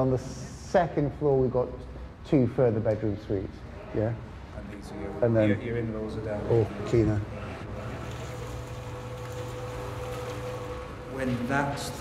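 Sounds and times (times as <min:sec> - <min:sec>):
cement mixer running: 0:06.5 - 0:12.0.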